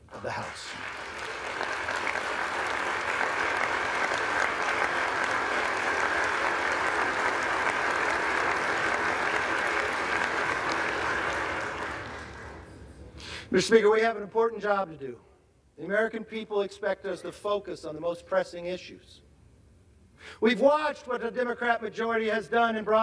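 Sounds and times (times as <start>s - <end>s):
large crowd applauding: 0.0s - 12.8s.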